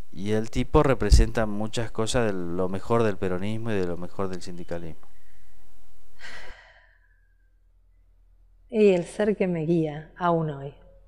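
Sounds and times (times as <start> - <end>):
person sighing: 6.2 - 7.0.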